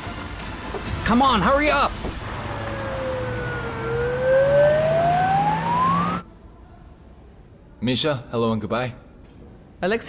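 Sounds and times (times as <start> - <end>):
low engine hum: 2.0 - 6.2
ambulance siren wailing: 2.2 - 6.2.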